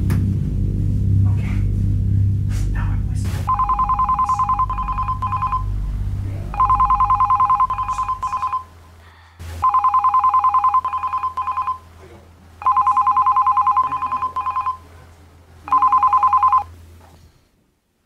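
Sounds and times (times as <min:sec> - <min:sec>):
telephone ringing two-tone: 0:03.5 - 0:05.7, 0:06.5 - 0:08.7, 0:09.6 - 0:11.9, 0:12.6 - 0:14.8, 0:15.7 - 0:16.7.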